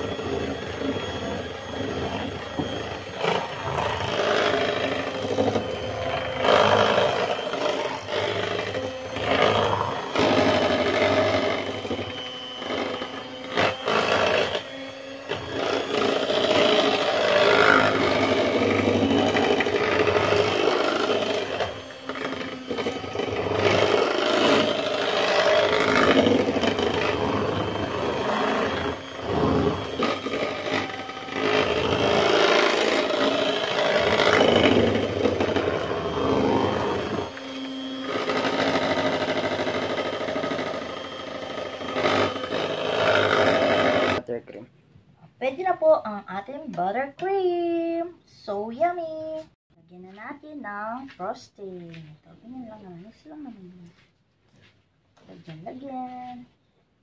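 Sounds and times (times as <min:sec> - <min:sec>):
electric hand mixer whipping: 0:00.0 - 0:44.2.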